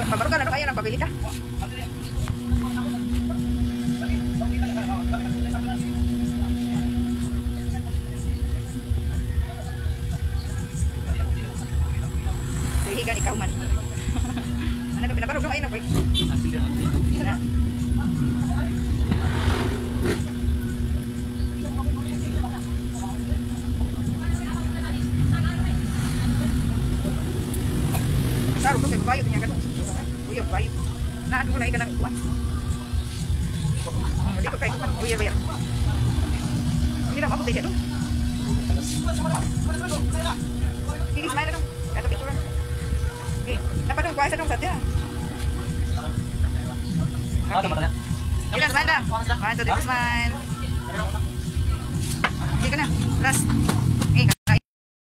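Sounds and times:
faint voices: 0:00.0 - 0:54.6
low rumble with hum: 0:00.0 - 0:54.6.

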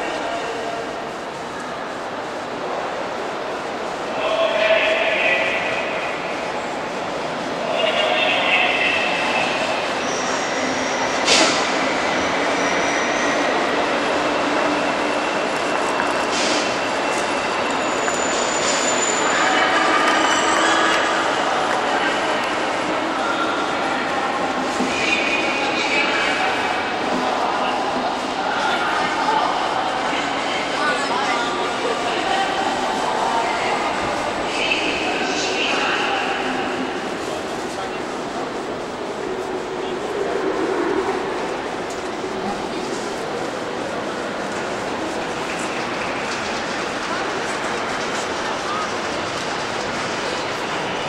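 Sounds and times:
people talking: 0:00.0 - 0:17.3, 0:18.9 - 0:51.0
train wheels rumbling on rails: 0:00.0 - 0:51.0.

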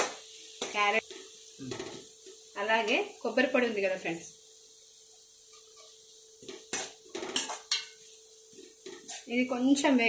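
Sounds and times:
spoon scraping a metal pan: 0:05.5 - 0:09.4.

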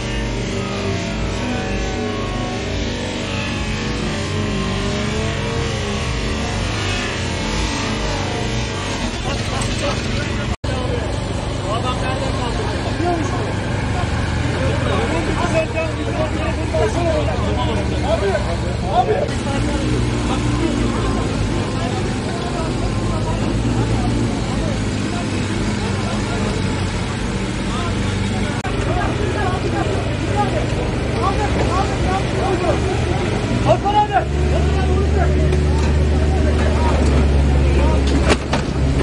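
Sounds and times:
diesel engine under load: 0:00.0 - 0:39.0
many voices chattering: 0:00.0 - 0:39.0.

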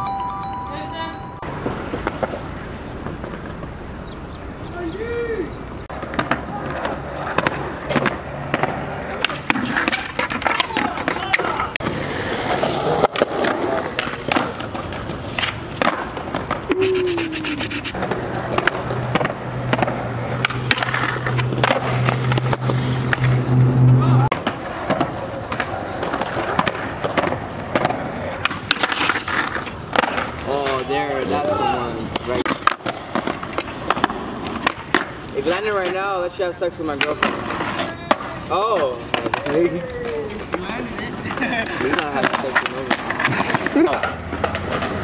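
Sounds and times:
skateboard rolling on concrete: 0:00.1 - 0:45.0
skateboard deck clacking: 0:05.9 - 0:23.4, 0:24.3 - 0:31.4, 0:32.1 - 0:45.0
person calling out: 0:16.7 - 0:18.0.

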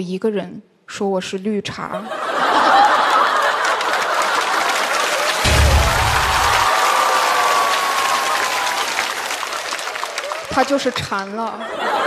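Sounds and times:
audience laughing: 0:02.0 - 0:10.1, 0:10.8 - 0:12.0
audience applauding: 0:02.4 - 0:12.0
music sting: 0:05.4 - 0:06.7
low bass note: 0:05.5 - 0:06.7.

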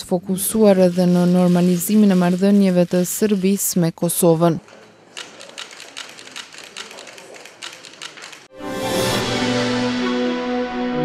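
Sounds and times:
camera shutters clicking: 0:04.7 - 0:08.5
news theme music: 0:08.5 - 0:11.0.

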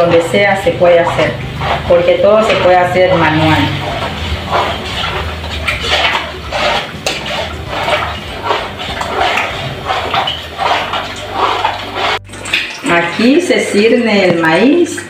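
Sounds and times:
low hum: 0:00.0 - 0:12.6
hands squelching meal in water: 0:00.0 - 0:15.0.

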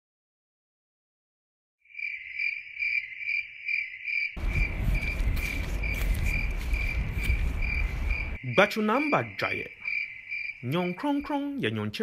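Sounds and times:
cricket chirping trill: 0:01.8 - 0:12.0
low rumbling noise: 0:04.4 - 0:08.4.

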